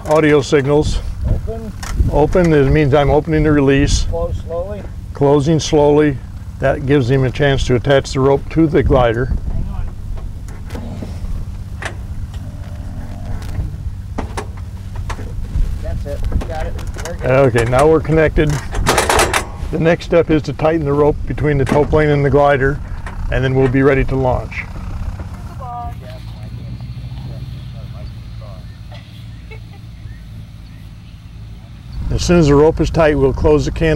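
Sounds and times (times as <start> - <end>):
distant voices: 0.0 - 33.9
low engine drone: 0.0 - 33.9
sharp metal clicks: 16.7 - 19.6.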